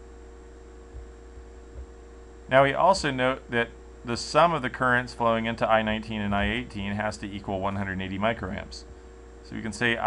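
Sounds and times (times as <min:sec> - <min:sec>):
low electrical hum with hiss: 0:00.0 - 0:10.0.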